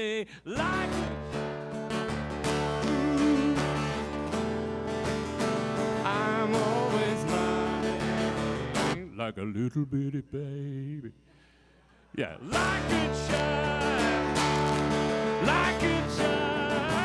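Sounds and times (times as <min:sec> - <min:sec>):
acoustic guitar strumming: 0:00.5 - 0:09.2, 0:12.5 - 0:17.0.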